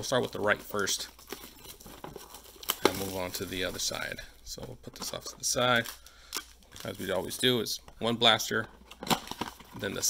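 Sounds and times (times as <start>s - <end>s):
plastic wrapping crinkling: 0.0s - 7.7s.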